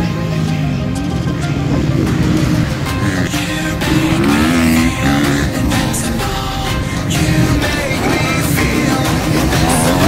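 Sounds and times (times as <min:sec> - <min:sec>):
background music: 0:00.0 - 0:10.0
dirt bike engines revving: 0:00.0 - 0:10.0.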